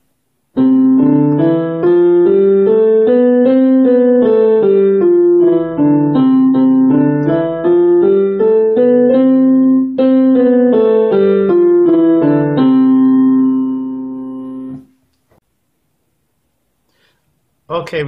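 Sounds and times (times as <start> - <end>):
digital piano playing a scale: 0.6 - 14.9.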